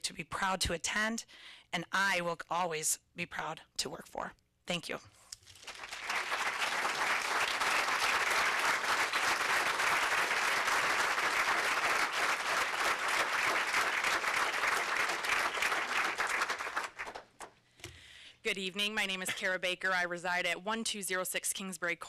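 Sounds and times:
audience applauding: 5.4 - 17.4.

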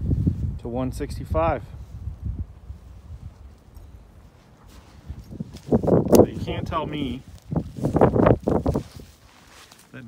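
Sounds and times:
footsteps on gravel: 4.3 - 10.0.

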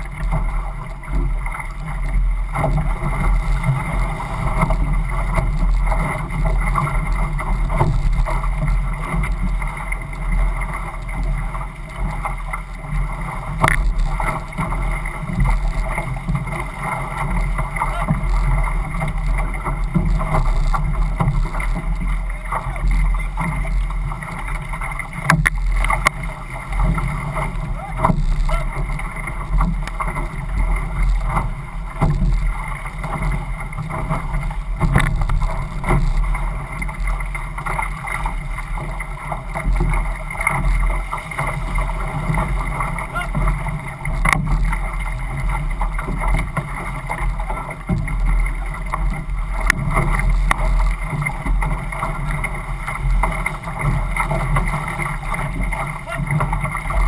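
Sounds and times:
water rushing along hull: 0.0 - 57.0
wind rumble on microphone: 0.0 - 57.0.

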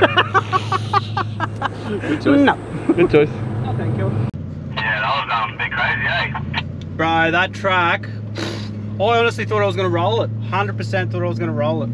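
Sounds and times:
man laughing: 0.0 - 3.3
car engine idling: 0.0 - 10.8.

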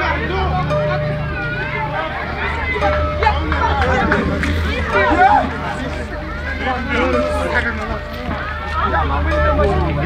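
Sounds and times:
crowd talking and calling out: 0.0 - 10.0
music with low bass drone: 0.0 - 10.0.

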